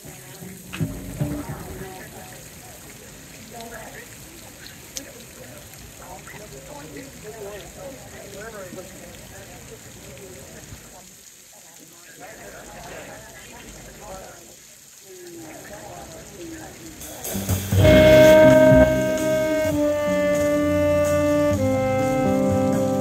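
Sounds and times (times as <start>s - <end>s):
drums: 0.0s - 3.0s, 16.7s - 23.0s
faint voices: 0.0s - 23.0s
upright bass: 0.8s - 1.9s, 17.2s - 23.0s
electric guitar: 17.3s - 23.0s
saxophone melody: 17.7s - 23.0s.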